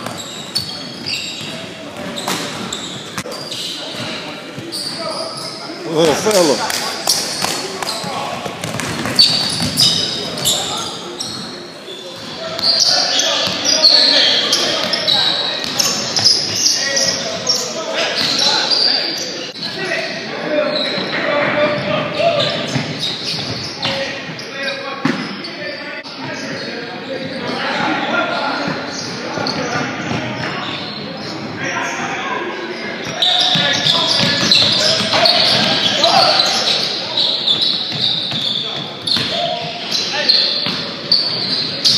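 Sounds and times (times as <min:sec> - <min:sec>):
sneakers squeaking: 0:00.0 - 0:41.9
voices echoing in a gym: 0:00.0 - 0:41.9
basketball bouncing: 0:07.1 - 0:10.0.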